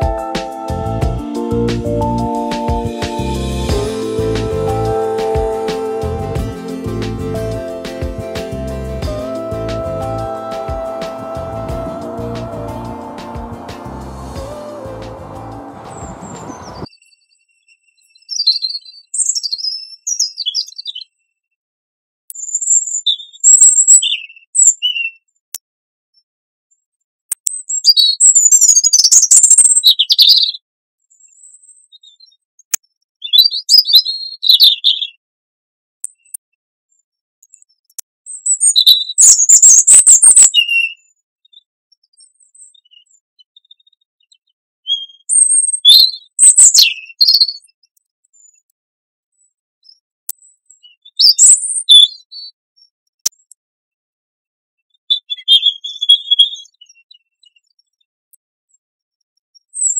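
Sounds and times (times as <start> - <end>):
robin singing: 22.4 - 25.2, 27.5 - 30.6, 33.2 - 35.2, 38.3 - 41.6, 42.4 - 47.7, 50.4 - 52.5, 55.0 - 58.0.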